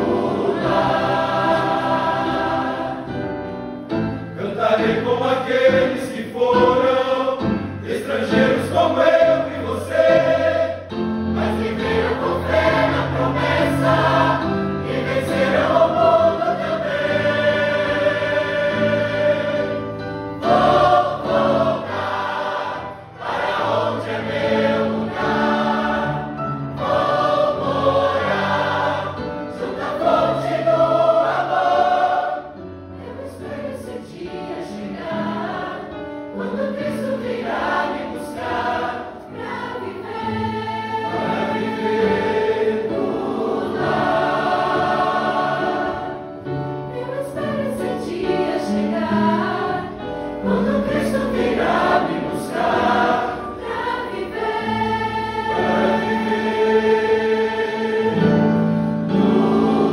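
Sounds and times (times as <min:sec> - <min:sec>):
choir singing a hymn: 0:00.0 - 0:59.9.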